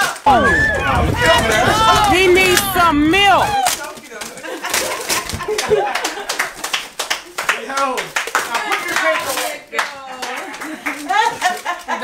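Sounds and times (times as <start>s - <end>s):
people exclaiming: 0.0s - 3.9s
duct tape crackling: 0.0s - 5.6s.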